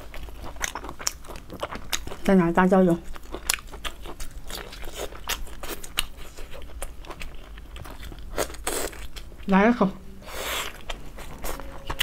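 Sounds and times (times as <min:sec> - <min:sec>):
wet chewing and lip-smacking: 0:00.0 - 0:02.4, 0:03.0 - 0:09.5.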